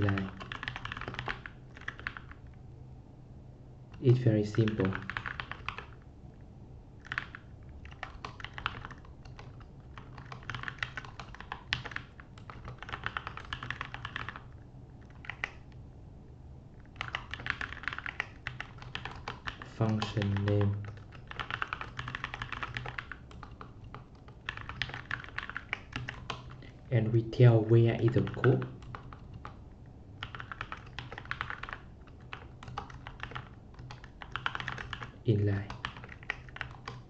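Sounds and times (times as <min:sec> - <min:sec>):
typing on computer keyboard: 0:00.0 - 0:02.6, 0:03.9 - 0:06.0, 0:07.0 - 0:15.8, 0:16.8 - 0:26.7, 0:27.9 - 0:29.6, 0:30.2 - 0:37.0.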